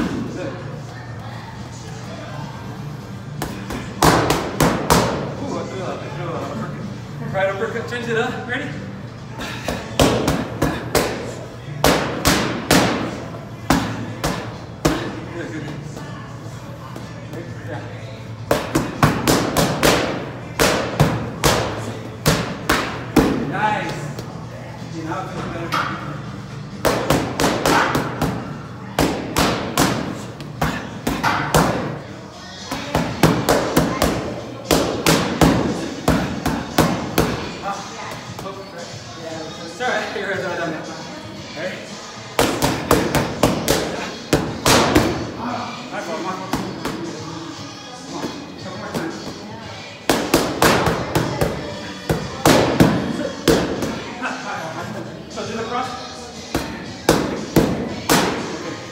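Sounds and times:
boxing gloves striking mitts: 26.8s - 28.4s.

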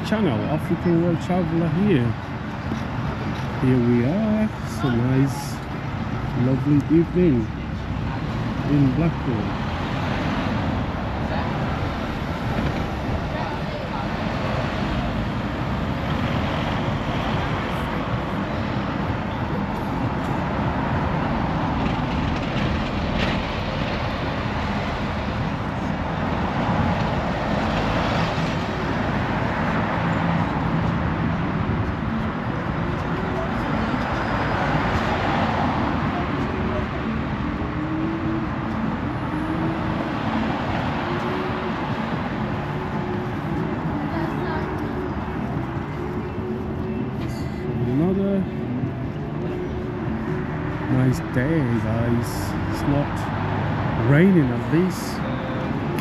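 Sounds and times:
bus driving by: 0.0s - 56.0s
cars passing: 0.0s - 56.0s.

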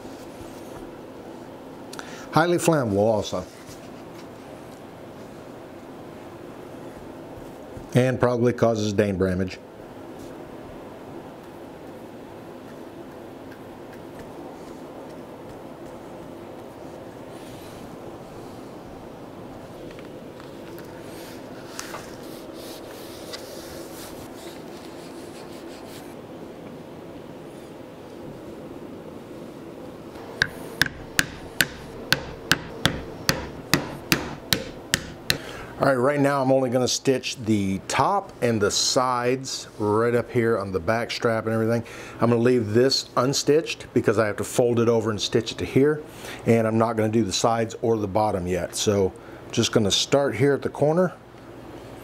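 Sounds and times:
low steady hum: 0.0s - 52.0s
hammer tapping leather: 30.4s - 35.5s.

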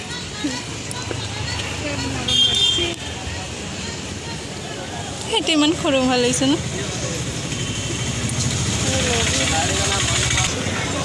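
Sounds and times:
faint voices talking: 0.0s - 11.0s
vehicle engine running: 8.1s - 10.6s.

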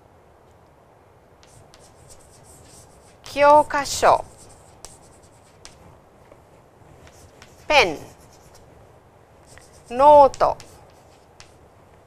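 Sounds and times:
chalk scratching on chalkboard: 1.4s - 5.8s, 7.0s - 8.7s, 9.4s - 11.6s
person speaking: 1.4s - 5.8s, 7.1s - 8.6s, 9.5s - 11.6s
chalk ticks: 9.5s - 11.6s.

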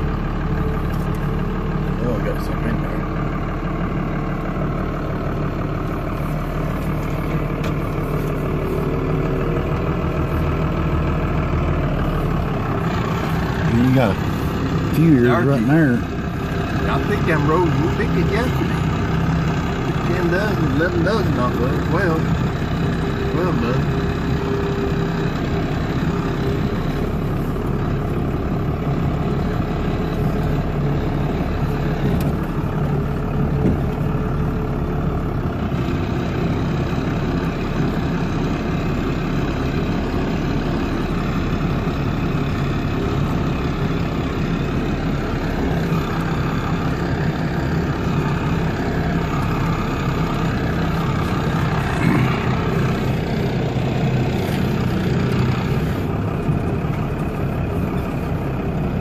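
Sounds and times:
vehicle engine driving slowly: 0.0s - 59.0s.

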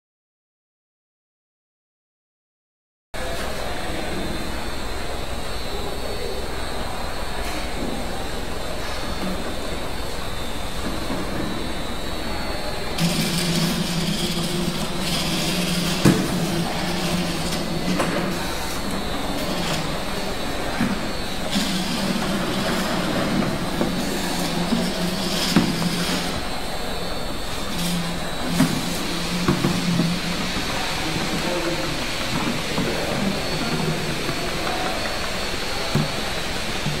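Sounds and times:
machine motors and conveyor: 3.2s - 37.0s.

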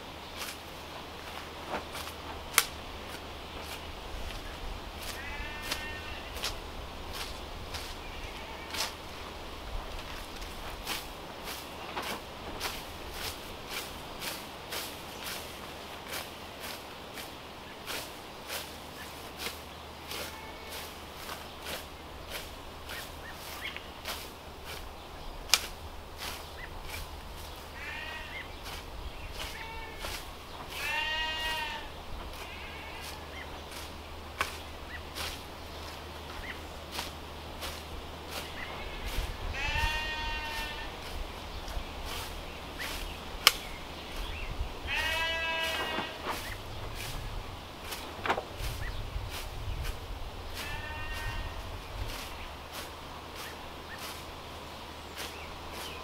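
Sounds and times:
hand scythe cutting grass: 0.2s - 56.0s
sharp cracks: 2.0s - 2.8s, 25.5s - 25.8s
lambs and goat kids bleating: 4.4s - 8.9s, 19.4s - 21.8s, 27.4s - 34.6s, 37.7s - 41.2s, 42.8s - 47.3s, 50.5s - 52.8s.

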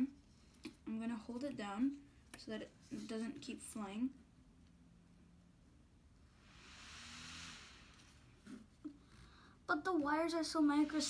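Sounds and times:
faint hiss: 6.2s - 9.8s.

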